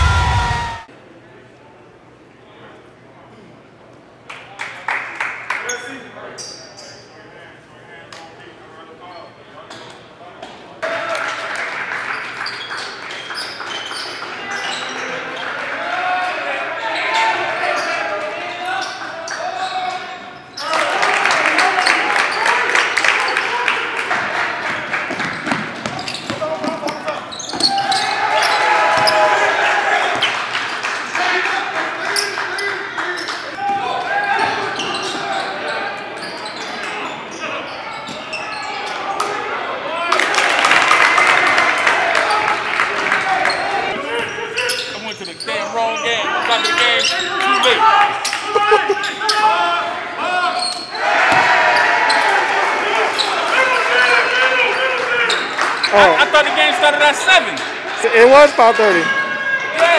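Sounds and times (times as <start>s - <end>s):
people shouting and calling out: 0.0s - 0.9s, 42.0s - 59.9s.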